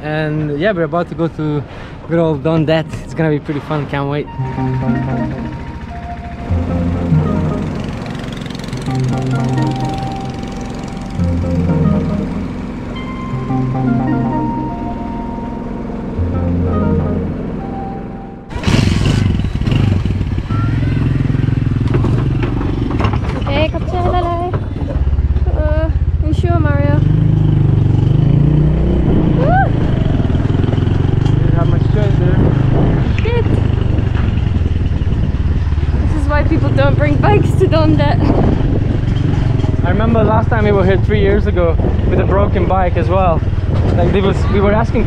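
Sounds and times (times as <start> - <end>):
background music: 4.2 - 18.6
small motorbike engine running: 4.6 - 13.0, 18.5 - 28.6, 29.4 - 41.6
voices: 23.3 - 27.1, 36.0 - 38.3.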